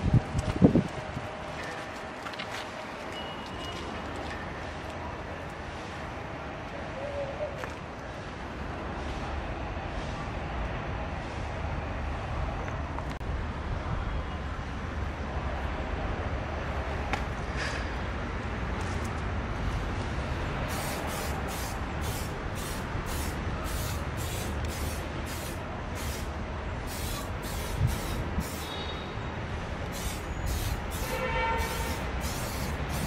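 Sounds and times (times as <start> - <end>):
aerosol spray can hissing: 20.7 - 26.3, 26.9 - 28.8, 29.9 - 33.0.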